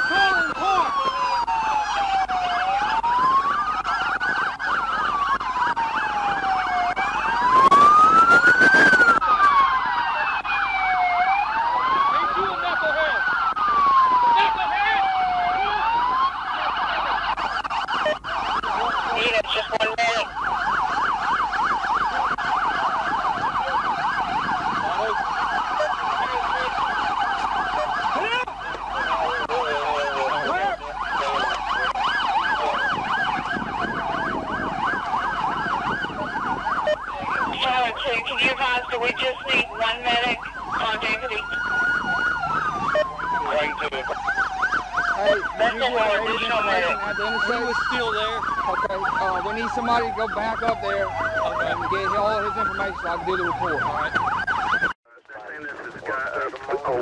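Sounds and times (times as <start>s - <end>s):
police siren wailing: 0.0s - 57.0s
police siren yelping: 0.0s - 57.0s.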